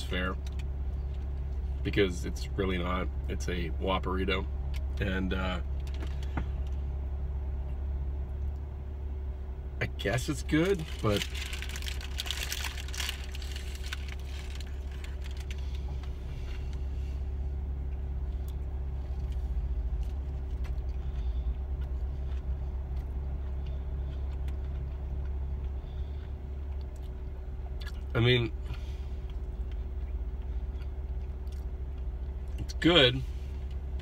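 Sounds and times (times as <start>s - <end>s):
vehicle idling hum: 0.0s - 34.0s
paper wrapper crinkling: 10.6s - 15.8s.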